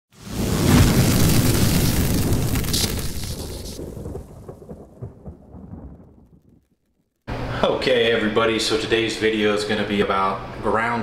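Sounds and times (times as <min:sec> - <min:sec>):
boom and thunder-like rumble: 0:00.2 - 0:06.7
faint crackles: 0:00.2 - 0:07.3.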